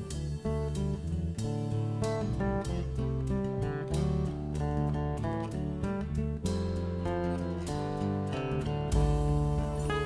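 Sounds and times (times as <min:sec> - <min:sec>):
acoustic guitar: 0:00.0 - 0:10.0
low bass notes: 0:00.0 - 0:10.0.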